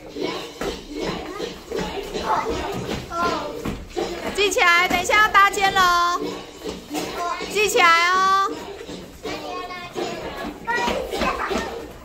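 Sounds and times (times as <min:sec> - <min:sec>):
children chattering and calling out: 0:00.0 - 0:03.8, 0:06.9 - 0:12.0.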